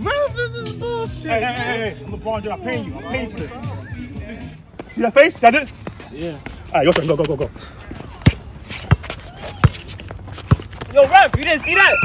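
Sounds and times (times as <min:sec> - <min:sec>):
basketball bouncing on asphalt: 0:05.7 - 0:12.0.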